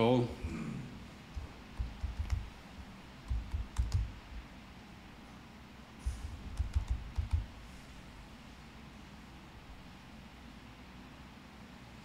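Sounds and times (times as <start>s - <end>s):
laptop keyboard typing: 1.3s - 4.4s, 6.2s - 7.6s.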